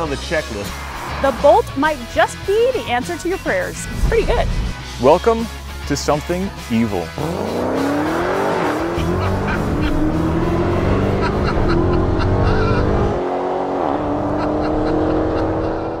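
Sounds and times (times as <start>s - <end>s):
car engine accelerating hard: 6.8s - 16.0s.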